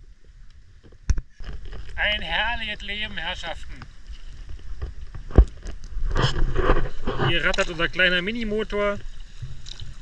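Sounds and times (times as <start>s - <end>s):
water splashes: 0.0s - 10.0s.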